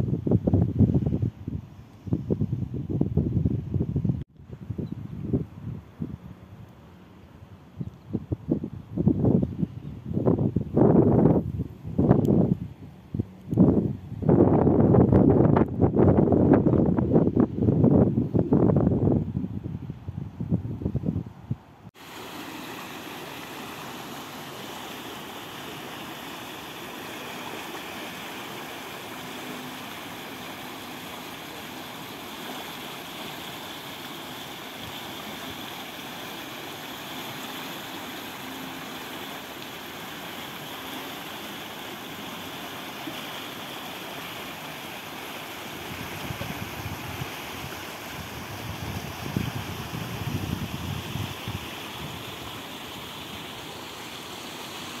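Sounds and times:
wind buffeting microphone: 0.0 - 6.4, 8.0 - 21.9, 45.9 - 52.5
floodwater rushing: 22.0 - 55.0.

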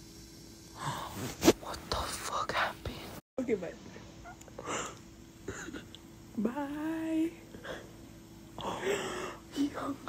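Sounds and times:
whispering soft voices: 1.6 - 3.2.

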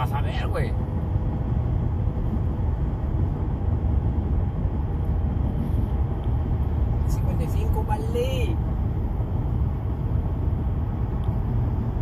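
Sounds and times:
road and drivetrain rumble in cab: 0.0 - 12.0.

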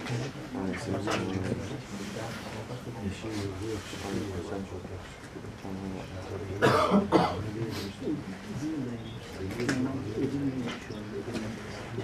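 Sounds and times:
quiet voices: 0.0 - 12.0
person coughing: 6.6 - 7.5.

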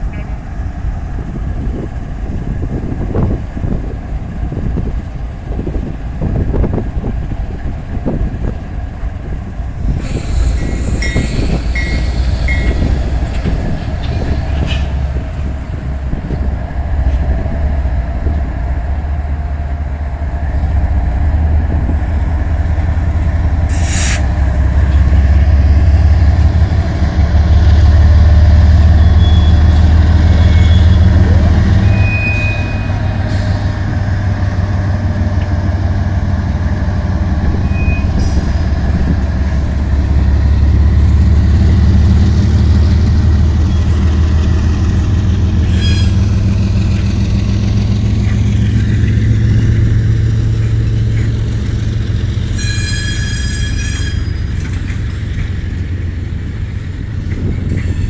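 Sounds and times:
diesel locomotive engines rumbling: 0.0 - 58.0
freight cars rolling: 9.2 - 58.0
short high squeals: 10.0 - 13.0, 29.0 - 33.5, 45.6 - 46.4, 52.5 - 54.6.

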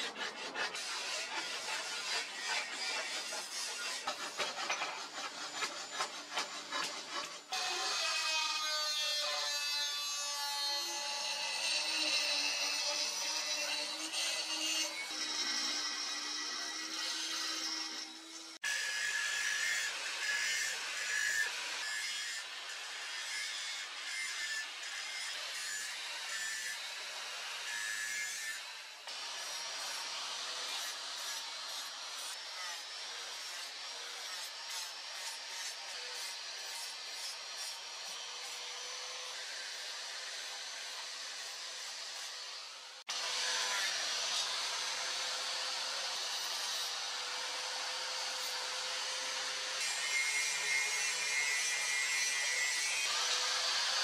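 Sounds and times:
angle grinder rasping on steel: 0.0 - 54.0.

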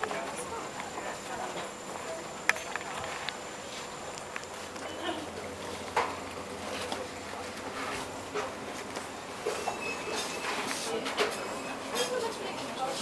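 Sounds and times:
indistinct shoppers' voices: 0.0 - 13.0.

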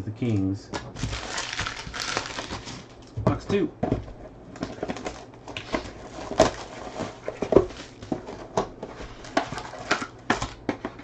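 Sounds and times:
plastic shrink wrap crinkling: 1.0 - 3.1, 4.6 - 8.4.

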